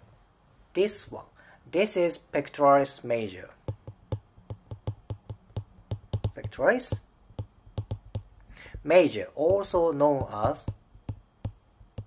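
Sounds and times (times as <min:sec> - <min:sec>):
stylus tapping on glass screen: 0:03.6 - 0:12.0.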